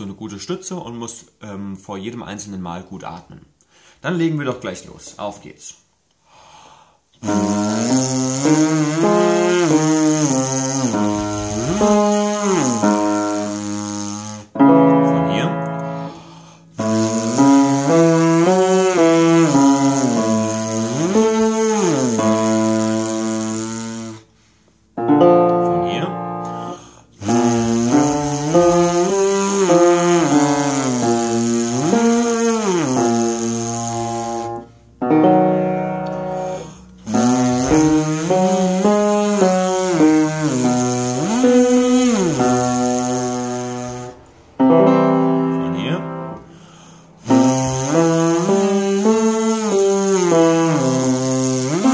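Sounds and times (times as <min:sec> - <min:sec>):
piano accompaniment: 0:07.2 - 0:24.2, 0:24.9 - 0:51.9
tuba lip buzzing: 0:07.2 - 0:24.6, 0:25.2 - 0:51.9.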